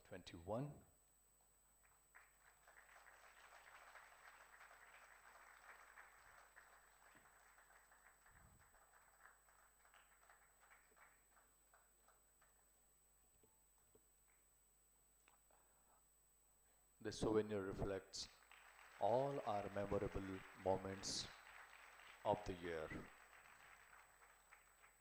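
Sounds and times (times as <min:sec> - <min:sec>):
faint audience applause: 0:01.8 - 0:12.8, 0:17.9 - 0:25.0.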